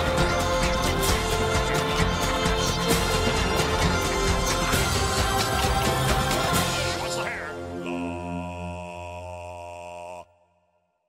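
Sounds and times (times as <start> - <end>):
outro music: 0.0 - 10.2.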